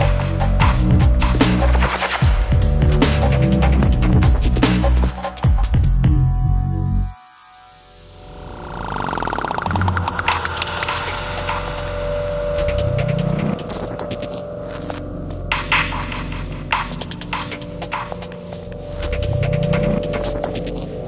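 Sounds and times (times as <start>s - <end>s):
steady held tone: 7.3s - 21.0s.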